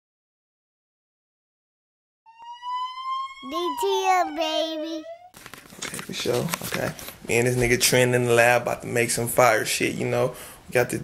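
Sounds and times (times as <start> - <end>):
long high rising tone: 2.3 - 5.4.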